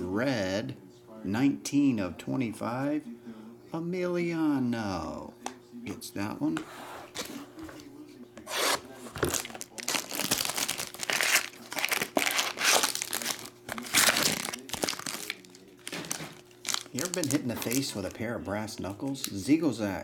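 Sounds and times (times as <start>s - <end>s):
foil wrapper crinkling and tearing: 9.2s - 19.5s.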